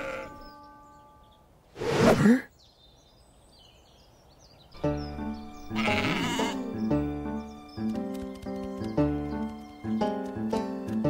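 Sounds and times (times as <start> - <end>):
sheep bleating: 0.0 - 0.4, 5.7 - 6.8.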